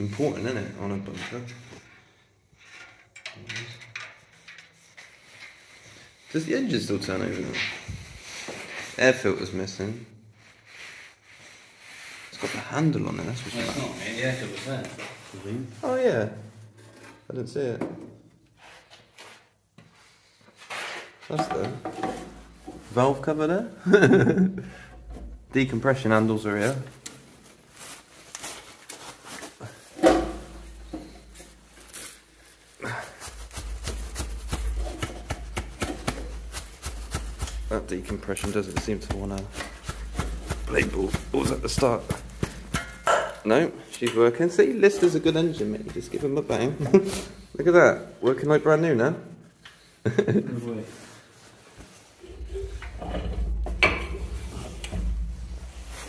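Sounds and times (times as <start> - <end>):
loud metal clunk: 30.0 - 30.6, 52.4 - 55.6
metallic knocks and clicks: 52.5 - 55.4.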